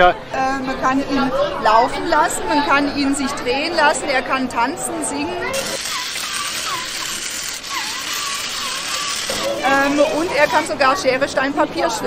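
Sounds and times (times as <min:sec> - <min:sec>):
small geared motors whirring: 0:05.5 - 0:10.7.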